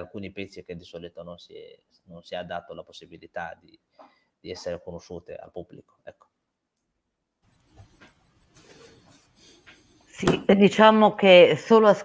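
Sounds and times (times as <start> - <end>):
soft handling sounds: 7.5 - 10.2.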